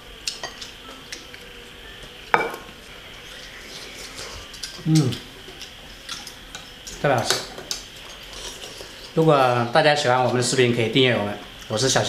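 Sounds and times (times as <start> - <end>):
ladle clinking on porcelain bowls: 2.4 - 2.7.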